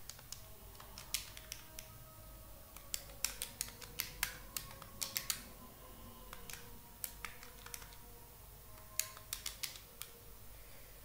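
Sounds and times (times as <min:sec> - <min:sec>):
stylus tapping on tablet: 0:02.8 - 0:05.4, 0:06.3 - 0:08.0, 0:08.8 - 0:10.1.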